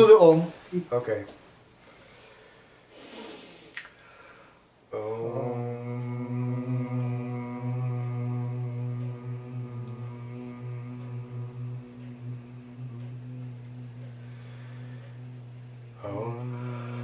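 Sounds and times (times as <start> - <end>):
low male voices chanting: 4.9 - 17.0.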